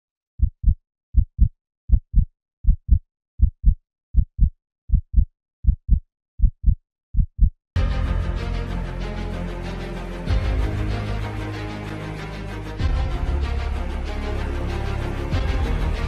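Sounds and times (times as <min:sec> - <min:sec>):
heartbeat thumps: 0:00.4 - 0:07.6
loud music: 0:07.8 - 0:16.0.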